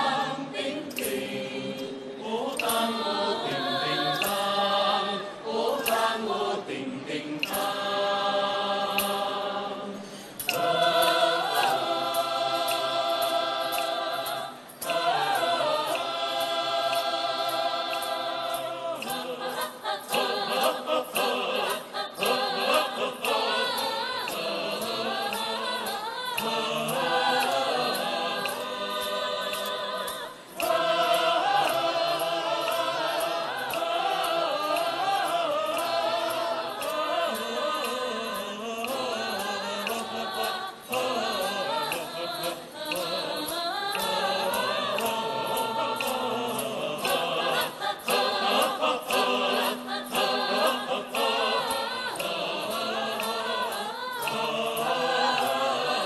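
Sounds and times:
choir breaths: 0.0 - 38.6
large choir singing: 0.0 - 56.0.

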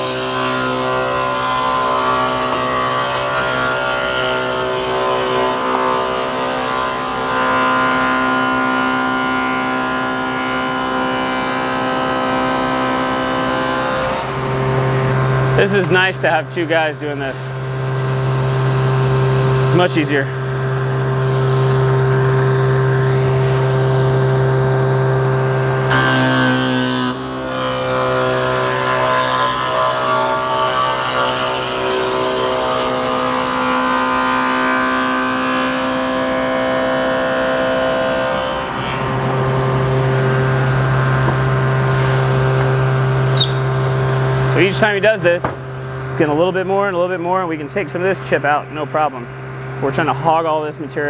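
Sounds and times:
table saw cutting wood: 0.0 - 51.0.

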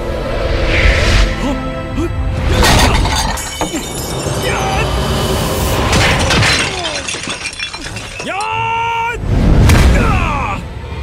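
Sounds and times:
man yelling: 8.2 - 9.2, 9.9 - 10.6.

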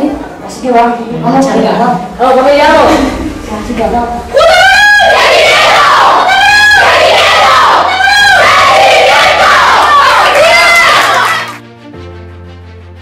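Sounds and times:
women shouting a team chant: 4.3 - 11.5.

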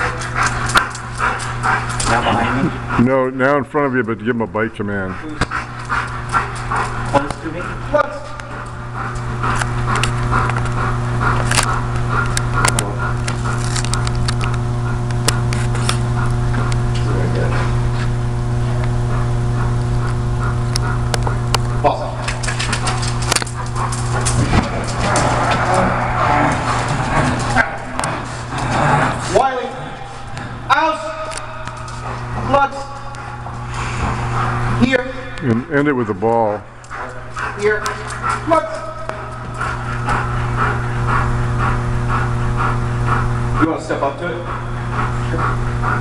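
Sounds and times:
low hum with overtones: 0.0 - 46.0.

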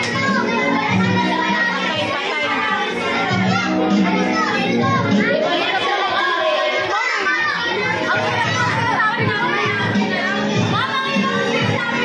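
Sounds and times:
children chattering and shouting: 0.0 - 12.0
music playing: 0.0 - 12.0.

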